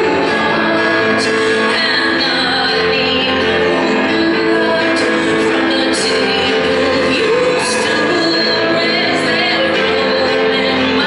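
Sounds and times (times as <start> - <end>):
grand piano playing: 0.0 - 11.0
woman singing: 0.0 - 11.0.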